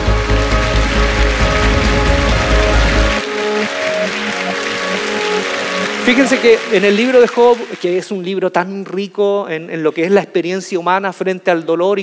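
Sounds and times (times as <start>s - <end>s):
heavy deep bass: 0.0s - 3.2s
sustained music chords: 0.0s - 7.8s.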